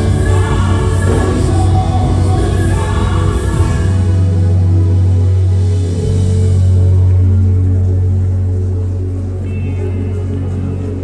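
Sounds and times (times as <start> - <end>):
voices singing together: 0.0 - 4.2
low keyboard pad: 0.0 - 11.0.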